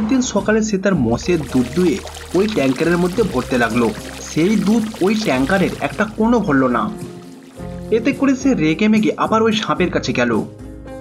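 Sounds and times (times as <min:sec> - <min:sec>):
milk pouring into a tanker: 0:01.2 - 0:07.9.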